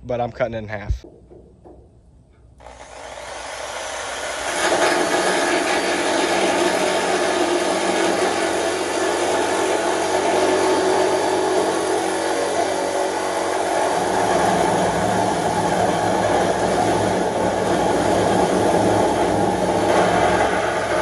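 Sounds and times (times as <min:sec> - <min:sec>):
reciprocating saw cutting sheet steel: 0:02.6 - 0:21.0.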